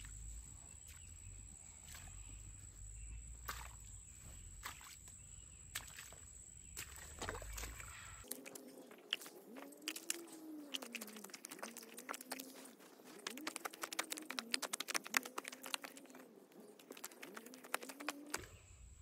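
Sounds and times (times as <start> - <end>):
wet clay squelching underfoot: 0.0 - 18.5.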